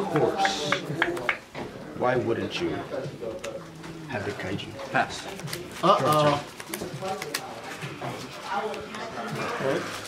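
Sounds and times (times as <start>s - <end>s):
people talking: 0.0s - 10.0s
playing cards clicking: 5.3s - 7.5s.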